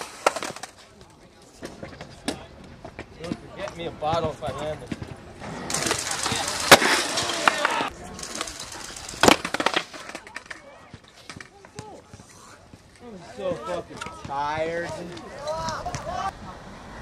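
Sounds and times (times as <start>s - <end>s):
skateboard smacking the ground: 0.0s - 0.8s, 5.7s - 8.5s, 9.2s - 12.2s
skateboard cracking: 0.0s - 0.9s, 5.4s - 11.6s
skateboard clattering: 0.0s - 2.5s, 4.9s - 11.9s
skateboard wheels rolling on concrete: 0.0s - 17.0s.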